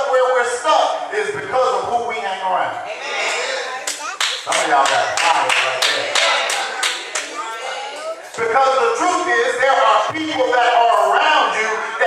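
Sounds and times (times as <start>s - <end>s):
man's voice: 0.0s - 2.9s, 4.5s - 6.8s, 8.3s - 12.0s
congregation clapping rhythmically: 3.8s - 7.4s.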